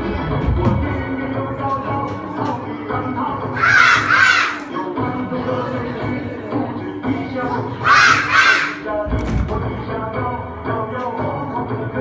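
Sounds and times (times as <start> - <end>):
background music: 0.0 - 12.0
children shouting in unison: 3.6 - 4.7, 7.8 - 8.9.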